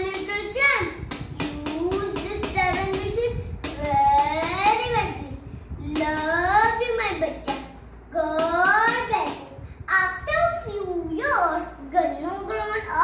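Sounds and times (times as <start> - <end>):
sharp taps: 0.0 - 4.9, 5.9 - 9.5.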